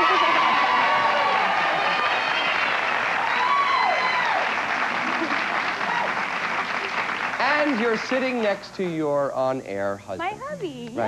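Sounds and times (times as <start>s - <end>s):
audience applauding: 0.0s - 8.7s.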